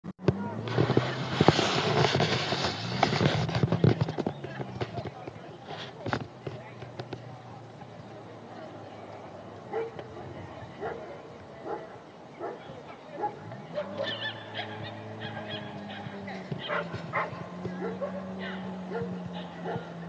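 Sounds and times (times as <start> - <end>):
quiet outdoor background: 0.0 - 20.0
faint voices: 0.2 - 20.0.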